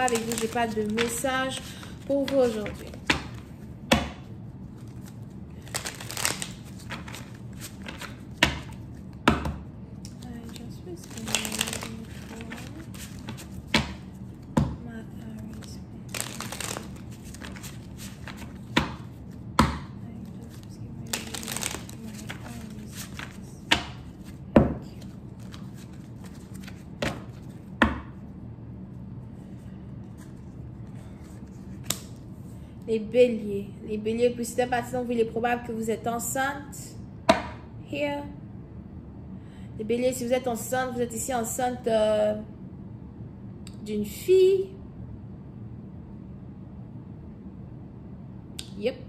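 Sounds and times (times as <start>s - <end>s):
cards being shuffled: 0.0s - 3.7s, 4.6s - 9.4s, 10.0s - 14.6s, 15.3s - 27.7s, 30.0s - 32.2s.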